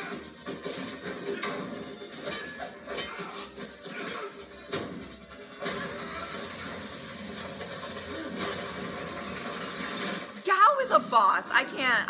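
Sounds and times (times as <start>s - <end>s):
background score music: 0.0s - 12.0s.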